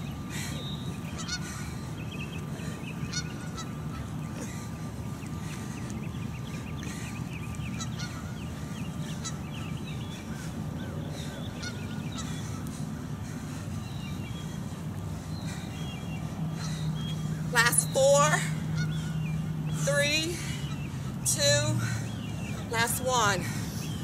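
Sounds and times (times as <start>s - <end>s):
bird wavering call: 0.0s - 4.5s
birds chirping: 0.0s - 24.0s
steady low hum: 0.0s - 24.0s.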